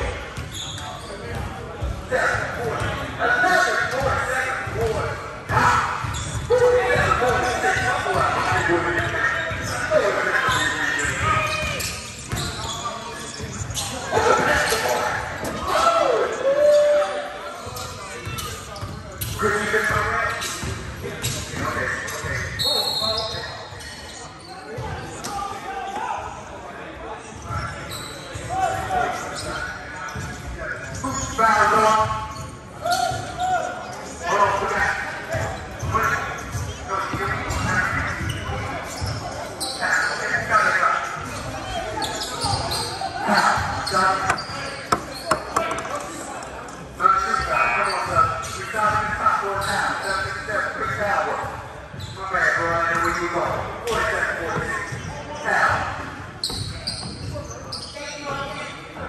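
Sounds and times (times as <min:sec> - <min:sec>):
people shouting and talking: 0:00.0 - 0:59.0
basketballs bouncing on wood floor: 0:44.2 - 0:46.0.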